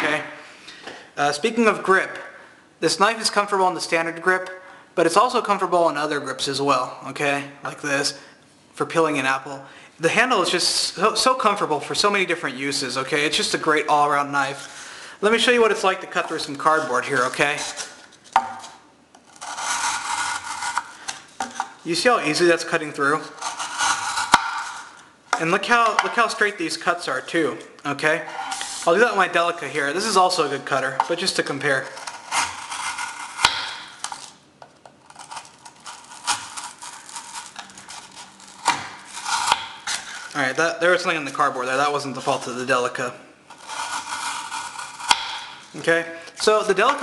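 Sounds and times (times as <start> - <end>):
knife cutting cardboard: 16.8 - 21.7, 23.3 - 24.9, 31.1 - 34.2, 35.2 - 40.4, 43.6 - 45.5.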